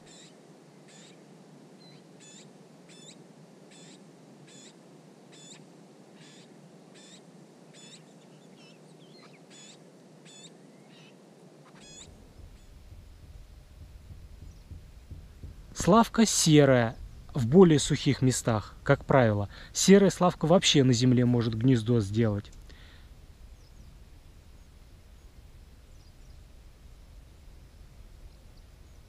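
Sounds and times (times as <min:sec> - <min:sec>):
high-pitched bird calls: 0:01.8 - 0:04.8, 0:06.2 - 0:07.2, 0:07.8 - 0:12.9.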